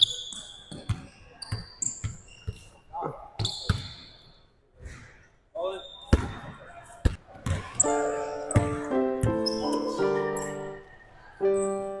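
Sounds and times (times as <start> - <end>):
music with keyboard notes: 7.8 - 12.0.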